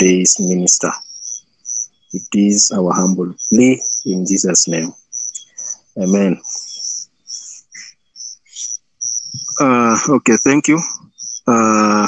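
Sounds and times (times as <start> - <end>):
crickets chirping: 0.0 - 12.0
faint steady high trill: 0.0 - 12.0.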